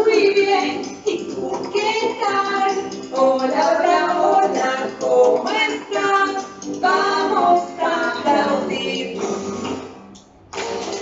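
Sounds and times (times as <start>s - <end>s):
children's song singing: 0.0s - 10.0s
backing music: 0.0s - 11.0s.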